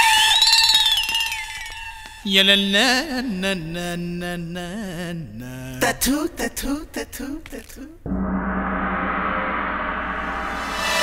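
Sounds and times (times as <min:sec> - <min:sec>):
ringing sound effect sting: 0:08.1 - 0:11.0.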